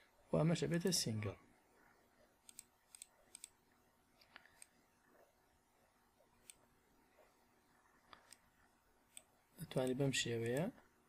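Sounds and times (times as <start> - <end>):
computer mouse clicks: 2.4 - 3.6, 4.2 - 4.8, 6.4 - 6.7, 9.1 - 10.7.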